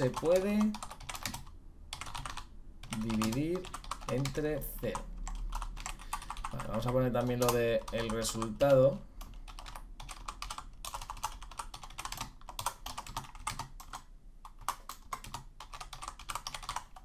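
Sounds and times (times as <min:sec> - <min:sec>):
keyboard typing clicks: 0:00.0 - 0:17.0.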